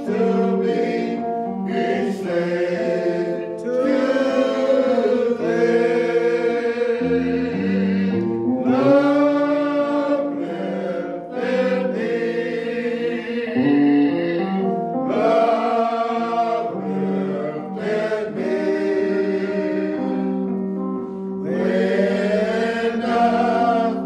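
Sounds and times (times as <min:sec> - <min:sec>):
choir singing hymn: 0:00.0 - 0:24.0.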